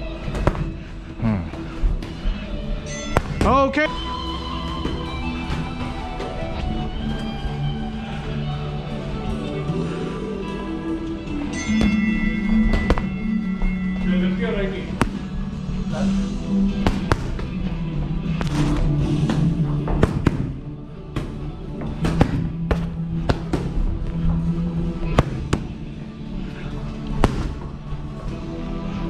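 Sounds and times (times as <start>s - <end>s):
background music: 0.0s - 29.0s
boxing gloves hitting punch pads: 3.0s - 3.6s, 11.7s - 13.7s, 14.9s - 15.4s, 16.7s - 17.6s, 18.4s - 24.0s, 25.0s - 25.8s, 27.0s - 27.8s.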